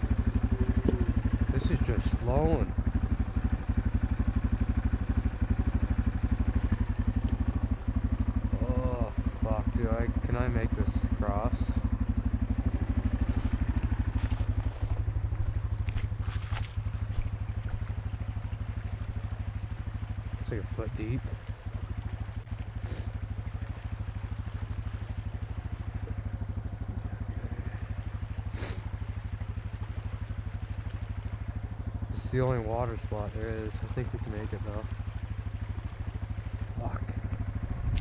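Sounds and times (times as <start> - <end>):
engine idling: 0.0 - 38.0.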